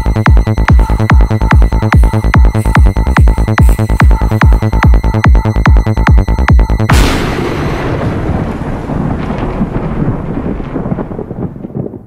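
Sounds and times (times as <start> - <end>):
thunder-like rumble with crackles: 6.8 - 12.0.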